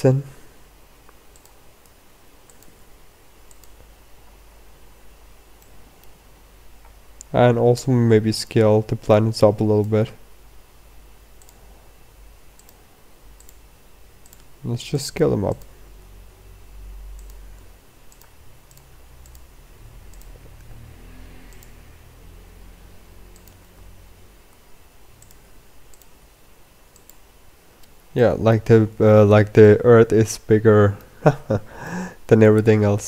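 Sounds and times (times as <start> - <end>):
low room noise: 0.0 - 33.0
low steady hum: 0.0 - 33.0
computer mouse clicks: 1.0 - 2.8, 3.4 - 3.8, 5.6 - 6.2, 11.4 - 11.7, 12.5 - 14.6, 17.1 - 21.8, 23.3 - 23.9, 24.5 - 26.2, 26.9 - 27.2.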